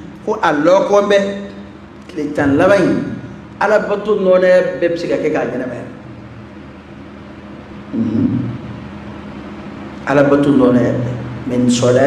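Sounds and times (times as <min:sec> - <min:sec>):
low hum: 0:00.0 - 0:12.0
microphone hiss: 0:00.0 - 0:12.0.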